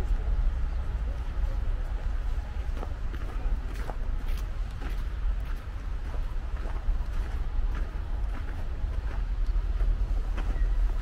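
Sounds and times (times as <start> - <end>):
low rumble of city traffic: 0.0 - 11.0
footsteps on packed snow: 2.0 - 11.0.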